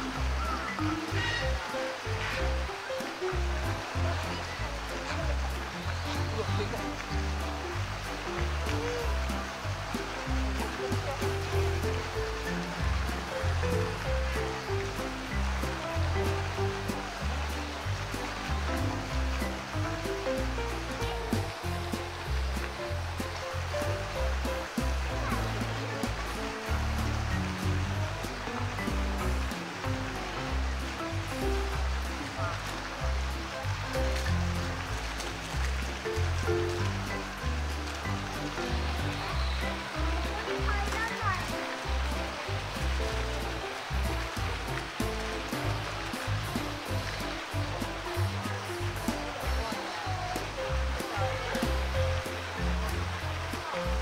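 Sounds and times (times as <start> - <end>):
background music with low notes: 0.0 - 54.0
flowing water rushing: 0.0 - 54.0.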